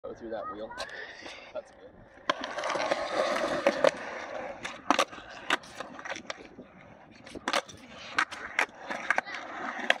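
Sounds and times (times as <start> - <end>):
skateboard wheels rolling on concrete: 0.2 - 10.0
skateboard deck clacking: 2.2 - 10.0.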